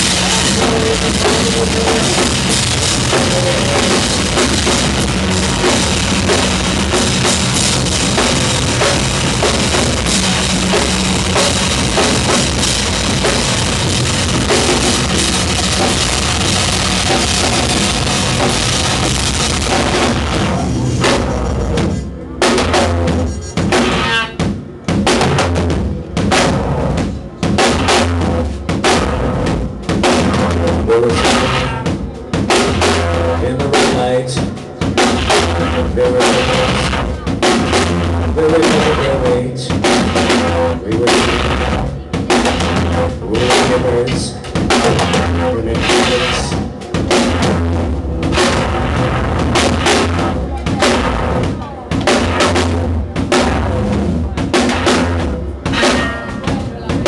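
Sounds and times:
loud noise rock band: 0.0s - 57.0s.

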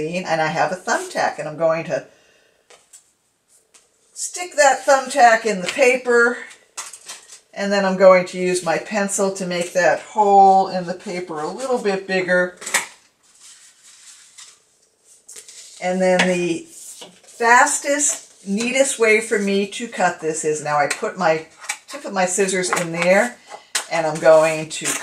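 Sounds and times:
paper rustling: 12.6s - 15.9s.

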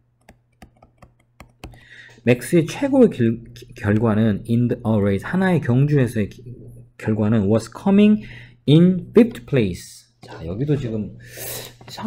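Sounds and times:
stylus tapping on tablet screen: 0.2s - 2.0s.

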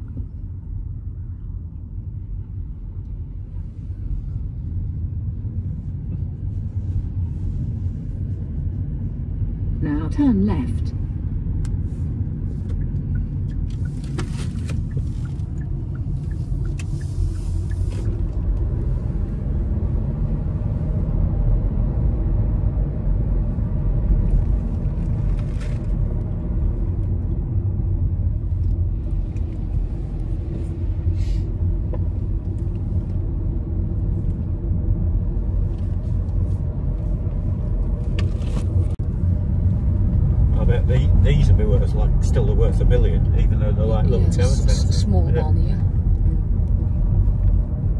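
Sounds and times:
car engine and tyre rumble: 0.0s - 47.9s.

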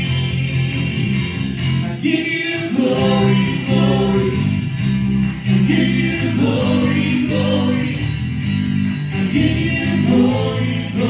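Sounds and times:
guitars playing: 0.0s - 11.0s
several voices singing together: 2.0s - 4.7s, 5.5s - 8.2s, 9.2s - 11.0s.

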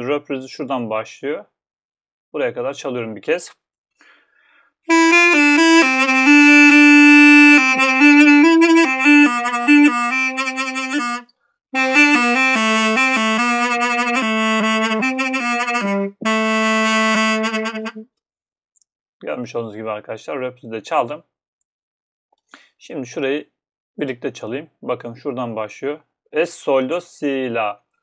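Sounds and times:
double-reed wind instrument melody: 4.9s - 18.0s.

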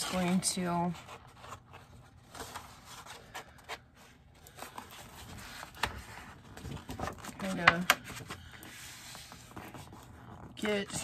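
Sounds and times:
paper rustling and sliding: 0.0s - 10.8s.

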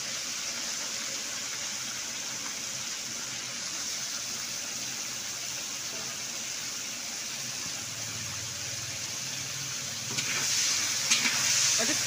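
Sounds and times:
food sizzling in oil: 0.0s - 12.0s
metal spatula clicking on pan: 11.0s - 11.4s.

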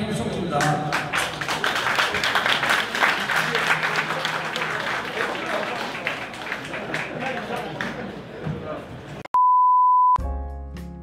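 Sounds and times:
steady reference tone beep: 9.4s - 10.2s.

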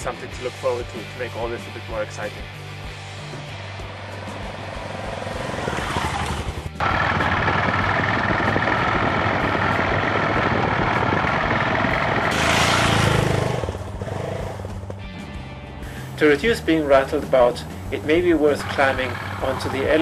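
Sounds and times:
motorcycle engine: 2.6s - 16.0s, 17.8s - 20.0s
tyres on dirt: 3.8s - 15.3s, 16.0s - 20.0s.

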